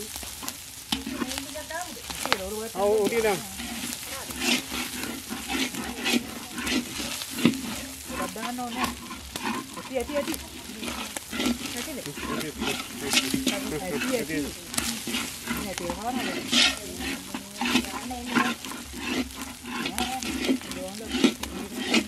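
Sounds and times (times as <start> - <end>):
rice sizzling in a pan: 0.0 - 22.0
spatula scraping a pan: 0.0 - 22.0.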